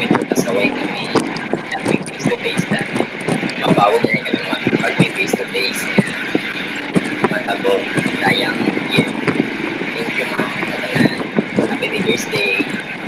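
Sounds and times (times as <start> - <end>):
young man speaking: 0.0 - 2.9, 3.5 - 6.3, 7.3 - 9.3, 9.9 - 12.8
steady background noise: 0.0 - 13.0.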